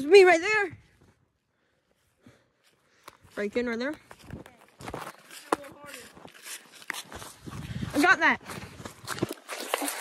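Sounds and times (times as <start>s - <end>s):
footsteps through dry leaves: 3.3s - 10.0s.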